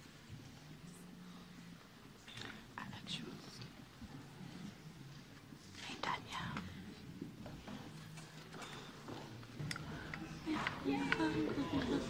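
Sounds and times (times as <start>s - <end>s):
people whispering: 0.8s - 12.0s.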